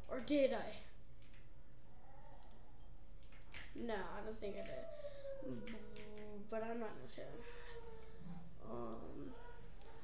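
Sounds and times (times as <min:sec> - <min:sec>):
faint clicks: 0:02.4 - 0:03.8, 0:04.6 - 0:04.8, 0:05.6 - 0:07.0.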